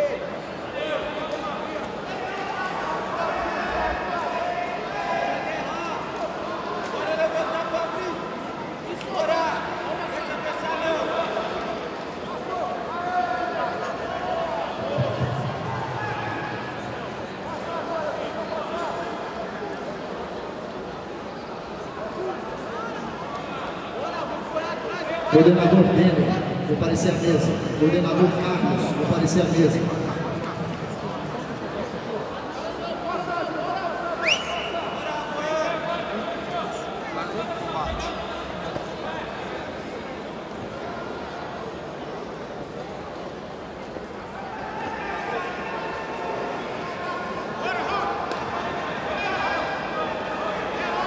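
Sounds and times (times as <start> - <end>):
sports hall background noise: 0.0 - 51.0.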